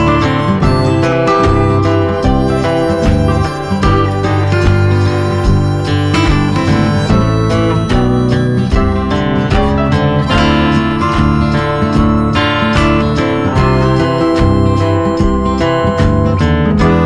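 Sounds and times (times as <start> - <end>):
strummed acoustic guitar music: 0.0 - 17.0.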